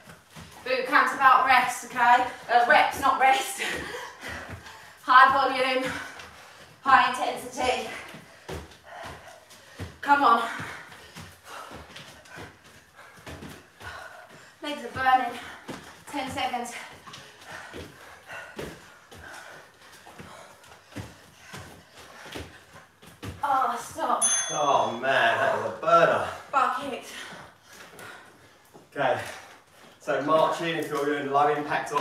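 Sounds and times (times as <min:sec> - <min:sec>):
thuds on exercise mats: 0:00.0 - 0:24.2.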